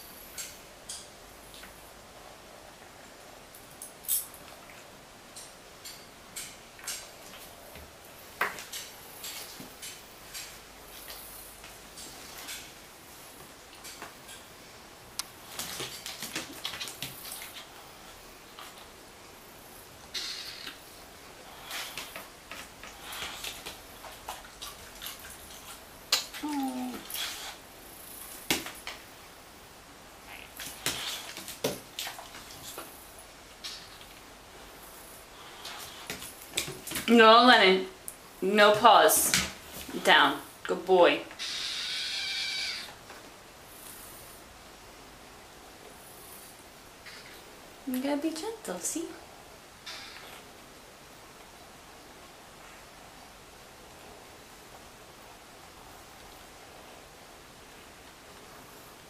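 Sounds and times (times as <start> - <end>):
kitten crying: 41.4 - 43.0.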